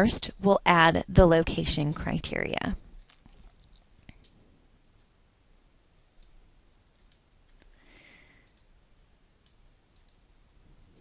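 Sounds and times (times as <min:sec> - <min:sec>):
computer mouse clicks: 0:03.0 - 0:04.4, 0:06.0 - 0:07.8, 0:08.4 - 0:08.7, 0:09.4 - 0:10.2
soft breath: 0:07.7 - 0:08.6.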